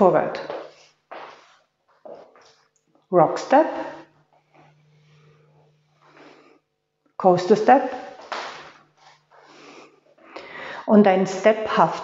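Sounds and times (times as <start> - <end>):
faint low hum: 2.2 - 12.0.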